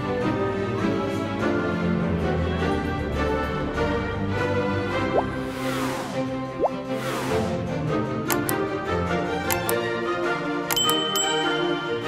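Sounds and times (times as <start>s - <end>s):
background music: 0.0s - 12.0s
short clicks: 8.3s - 8.7s, 9.5s - 9.8s
high bell-like ding: 10.7s - 12.0s.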